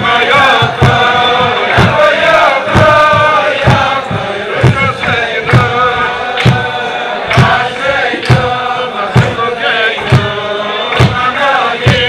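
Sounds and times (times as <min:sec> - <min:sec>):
men singing together: 0:00.0 - 0:12.0
thumps keeping time: 0:00.0 - 0:12.0.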